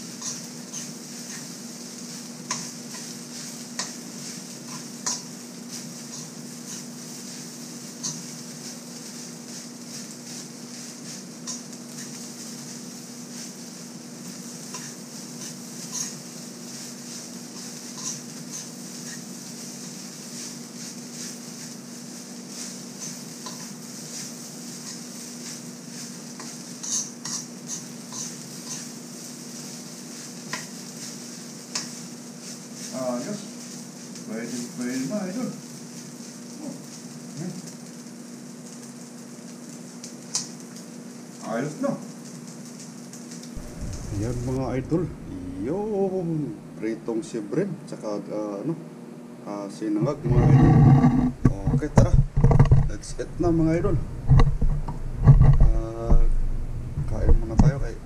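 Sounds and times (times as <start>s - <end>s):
rice sizzling: 0.0s - 58.0s
metal spoon scraping a wok: 0.1s - 1.5s, 2.5s - 7.3s, 8.0s - 8.4s, 14.6s - 16.2s, 16.9s - 21.7s, 22.5s - 29.0s, 50.2s - 53.1s
steady low hum: 43.6s - 47.9s, 50.0s - 58.0s.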